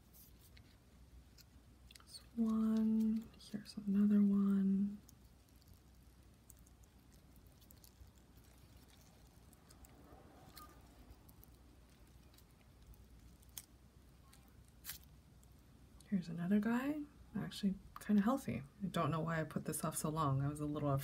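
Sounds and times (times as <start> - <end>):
faint clicks and rustles of plant: 0.0 - 16.1.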